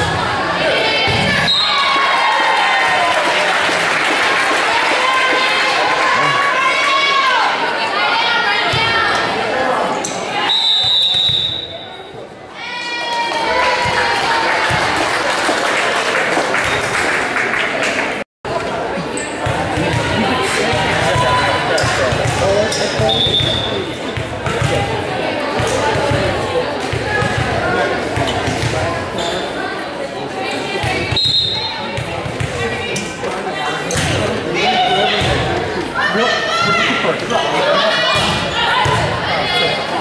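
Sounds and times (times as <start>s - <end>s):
people shouting and cheering: 0.0s - 23.9s, 24.5s - 40.0s.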